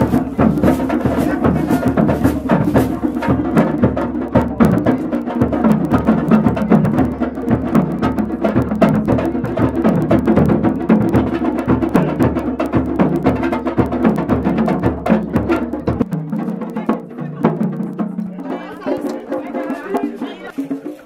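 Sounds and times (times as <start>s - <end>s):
deep drum beats: 0.0s - 21.0s.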